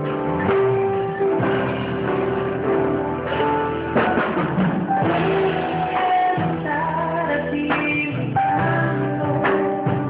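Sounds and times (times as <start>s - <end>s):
drums: 0.0s - 10.0s
electric guitar: 0.0s - 10.0s
piano chords: 0.0s - 10.0s.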